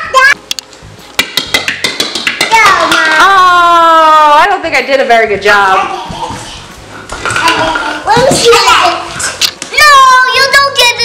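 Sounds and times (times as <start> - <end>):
plastic ball bouncing on tile: 0.5 - 3.4, 7.1 - 8.6.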